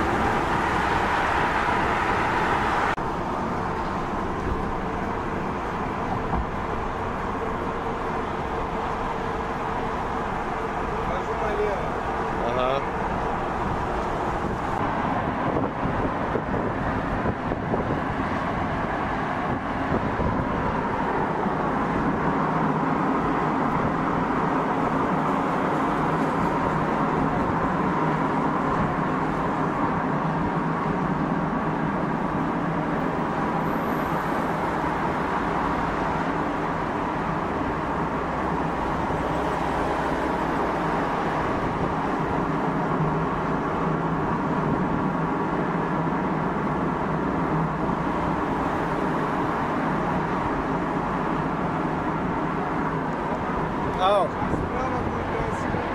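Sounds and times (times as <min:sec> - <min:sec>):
cars driving on a road: 0:00.0 - 0:55.9.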